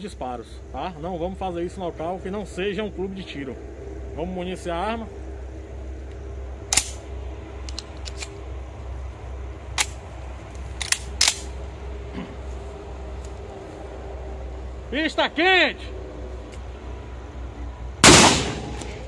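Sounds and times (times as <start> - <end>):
shells clicking into shotgun: 10.8 - 11.5.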